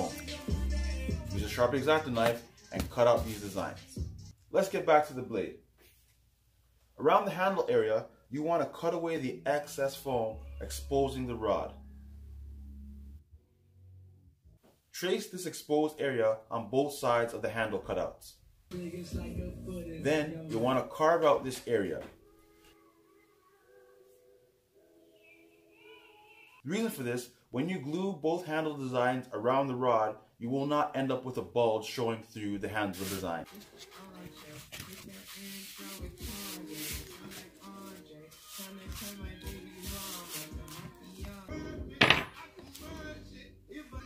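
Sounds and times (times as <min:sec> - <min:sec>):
faint background music: 0:00.0 - 0:05.5, 0:07.1 - 0:13.2, 0:15.8 - 0:44.0
hands rubbing foam: 0:32.9 - 0:41.4.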